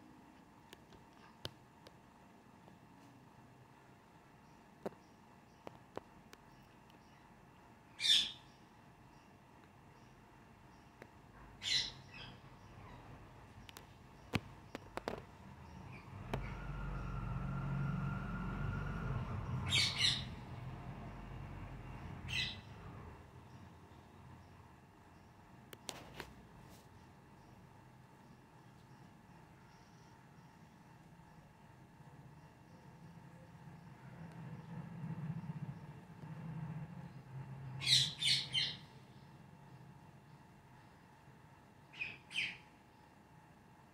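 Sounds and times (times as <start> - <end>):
faint low hum: 0.0 - 43.9
faint parakeet call: 7.9 - 9.3, 11.6 - 13.8, 15.6 - 20.4, 41.8 - 43.0
parakeet squawk: 11.6 - 13.0, 19.6 - 20.4.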